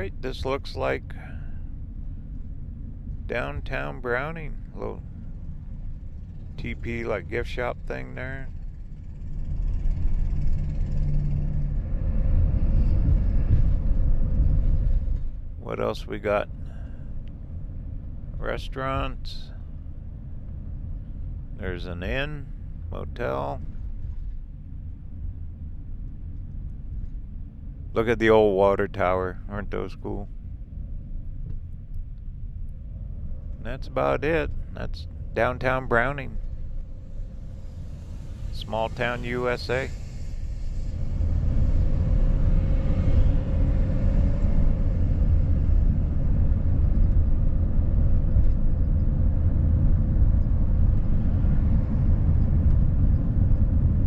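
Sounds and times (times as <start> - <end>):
vehicle engine and road rumble: 0.0 - 54.0.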